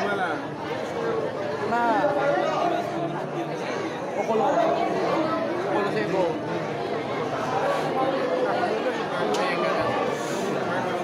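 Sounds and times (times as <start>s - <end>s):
murmur of background chatter: 0.0s - 11.0s
people talking: 0.0s - 11.0s.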